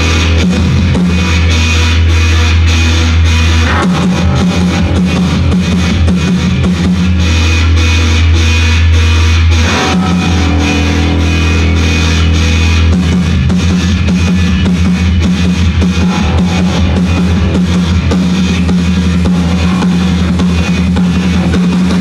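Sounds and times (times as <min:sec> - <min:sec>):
drum kit: 0:00.0 - 0:22.0
electric guitar: 0:00.0 - 0:22.0
long held bass notes: 0:00.0 - 0:22.0.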